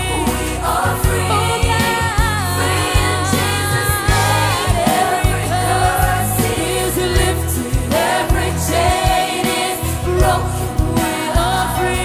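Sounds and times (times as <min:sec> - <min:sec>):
band with drums bass and keyboard: 0:00.0 - 0:12.0
children's choir singing: 0:00.0 - 0:12.0
lead singers singing: 0:00.0 - 0:12.0.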